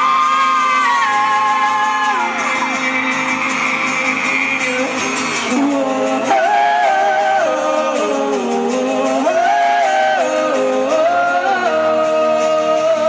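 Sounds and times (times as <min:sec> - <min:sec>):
live pop song with band: 0:00.0 - 0:13.0
person singing: 0:00.0 - 0:13.0.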